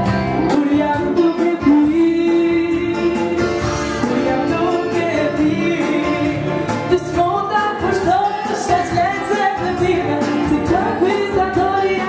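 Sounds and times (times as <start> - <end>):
woman singing into a microphone: 0.0 - 12.0
amplified dance music: 3.4 - 12.0.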